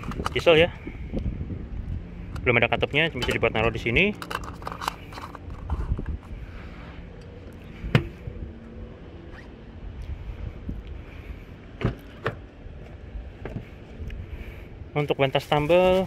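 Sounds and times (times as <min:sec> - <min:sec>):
handling noise at fuel filler: 0:03.1 - 0:06.4, 0:07.1 - 0:08.4, 0:11.7 - 0:14.0.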